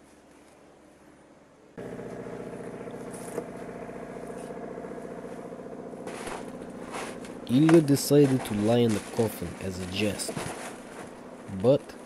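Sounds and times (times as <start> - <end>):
faint low hum: 0.0 - 12.0
engine running: 1.8 - 12.0.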